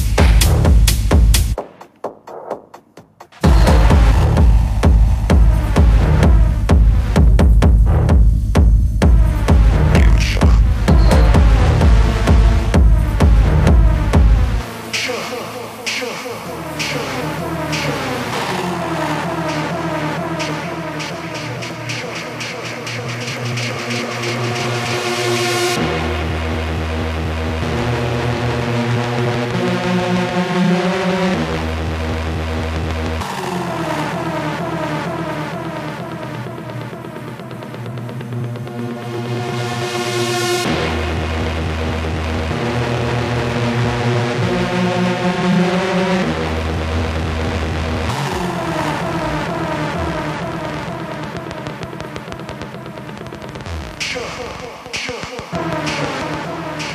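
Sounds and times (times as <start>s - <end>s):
heavy bass: 0.0s - 1.8s, 3.4s - 56.9s
noisy synth sweep: 3.4s - 8.1s, 9.0s - 22.0s, 40.4s - 56.9s
sustained synth tones: 9.6s - 12.2s.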